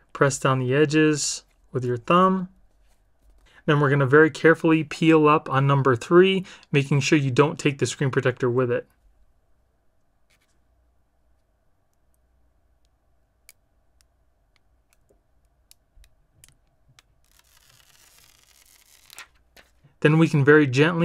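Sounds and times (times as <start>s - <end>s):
plastic sheet peeling rustle: 17.0s - 19.8s.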